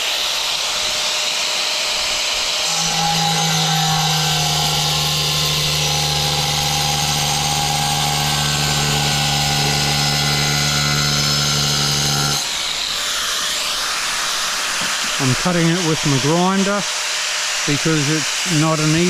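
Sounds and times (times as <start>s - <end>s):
grinder blade winding down: 0.0s - 16.7s
angle grinder cutting tile: 0.0s - 19.0s.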